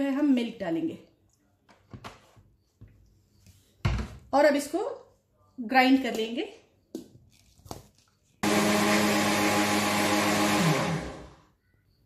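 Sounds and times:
mixer grinder motor running: 8.4 - 11.4.

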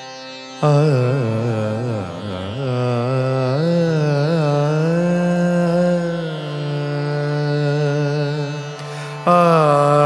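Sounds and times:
person singing with pitch bends: 0.6 - 10.0.

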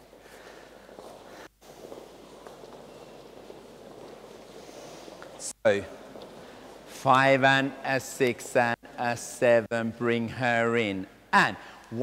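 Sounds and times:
shuffling footsteps on wooden floor: 0.0 - 7.0.

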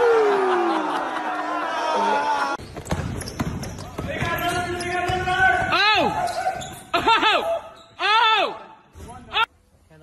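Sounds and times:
basketball bouncing in a gym: 2.6 - 7.1.

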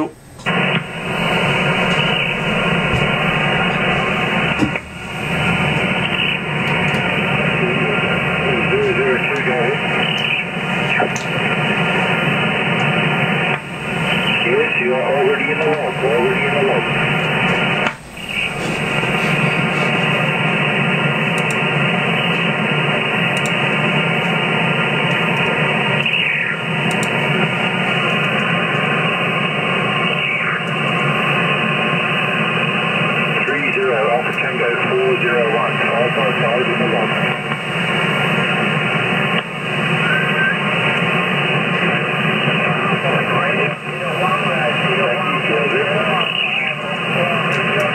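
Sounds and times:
garbled radio voices: 0.0 - 31.6, 33.2 - 47.9
radio band noise hiss: 0.0 - 47.9.

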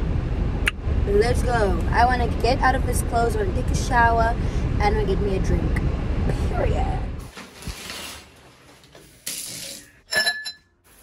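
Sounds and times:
shower water spraying: 7.3 - 10.0
glass clink with ringing tone: 10.1 - 10.8.

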